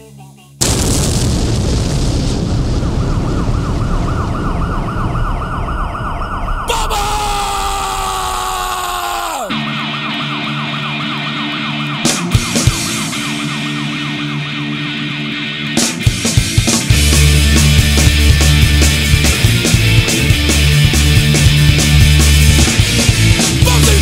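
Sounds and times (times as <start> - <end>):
loud explosion-like rumble: 0.6 - 8.2
fast-warbling siren: 2.6 - 8.6, 9.5 - 12.1
long falling whistle: 2.7 - 10.8.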